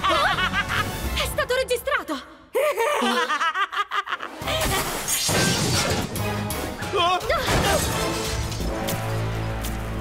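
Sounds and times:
background music: 0.0 - 10.0
cartoon character laughing: 2.8 - 4.8
loud shattering crash: 7.5 - 8.8.

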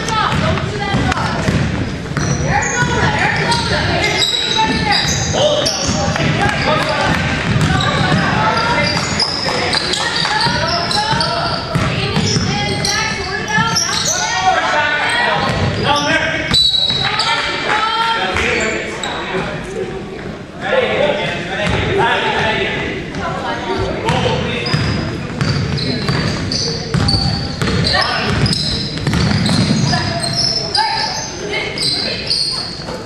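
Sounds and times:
basketball bouncing on gym floor: 0.0 - 3.8, 4.5 - 13.8, 24.0 - 30.4
people calling out: 2.2 - 19.3.

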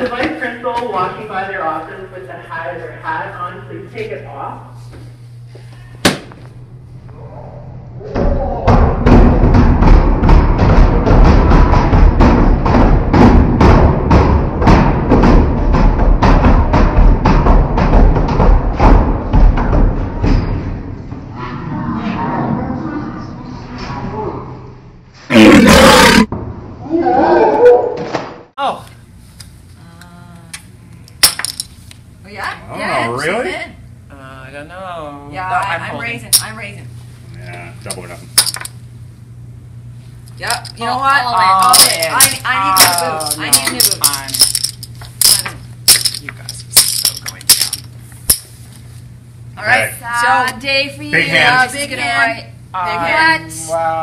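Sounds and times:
steady low hum: 0.0 - 27.2, 28.5 - 54.0
poker chips clacking on table: 31.2 - 31.7, 37.9 - 38.8, 41.7 - 48.4.

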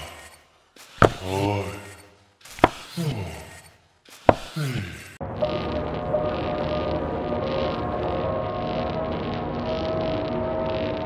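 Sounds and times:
sharp knocks: 1.0 - 1.2, 2.6 - 2.9, 4.3 - 4.5.

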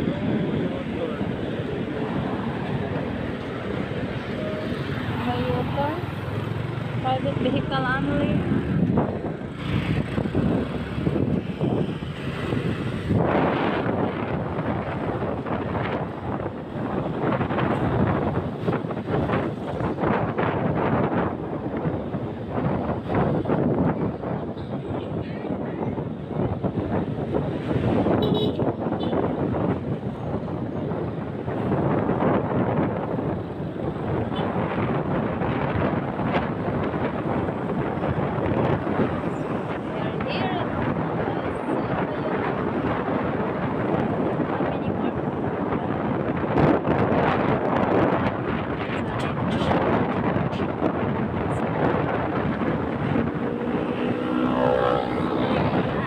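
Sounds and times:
road noise: 0.0 - 56.0
wind on microphone: 0.0 - 56.0
motorcycle engine: 3.0 - 16.7, 52.1 - 56.0.

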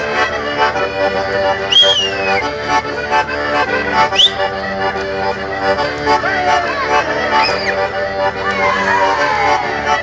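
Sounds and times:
accordion folk dance music: 0.0 - 10.0
loud sliding whistle: 1.7 - 2.4, 4.2 - 4.4.

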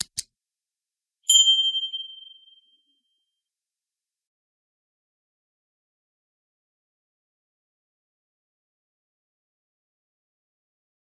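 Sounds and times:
notification bell ding: 1.3 - 2.7.

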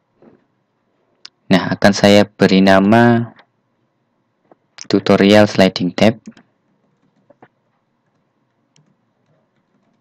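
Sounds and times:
computer keyboard keystrokes: 6.2 - 10.0.

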